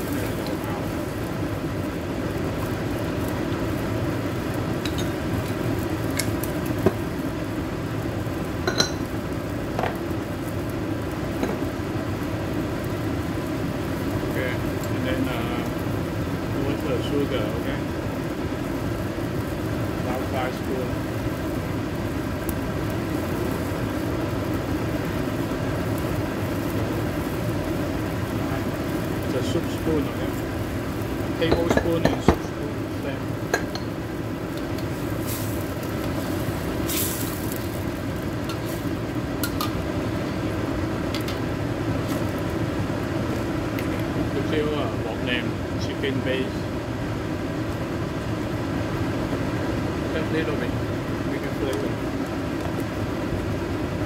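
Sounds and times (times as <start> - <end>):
low kitchen hum: 0.0 - 54.0.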